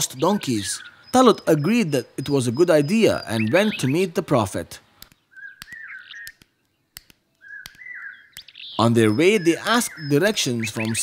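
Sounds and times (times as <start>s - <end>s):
faint sharp clicks: 5.0s - 8.6s, 10.7s - 11.0s
songbird whistled call: 5.3s - 6.4s, 7.4s - 11.0s.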